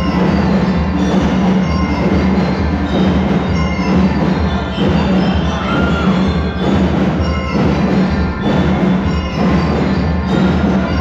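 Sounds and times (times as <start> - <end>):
bell lyres ringing: 0.0 - 11.0
marching drums: 0.0 - 11.0.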